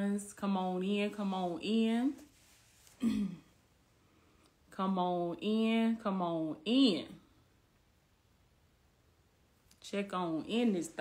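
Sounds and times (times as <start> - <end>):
woman clearing her throat: 3.0 - 3.6.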